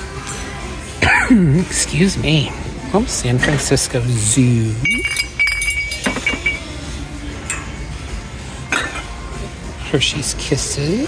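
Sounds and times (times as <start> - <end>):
ceramic mugs clinking: 4.8 - 6.8.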